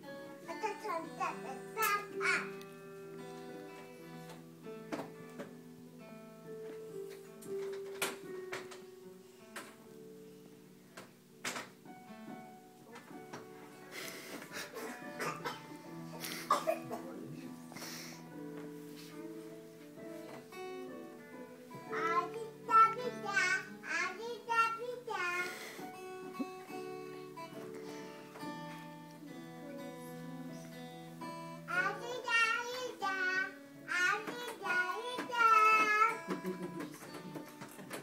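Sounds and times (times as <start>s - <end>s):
guitars and keyboard playing: 0.0s - 38.0s
person singing: 19.0s - 38.0s.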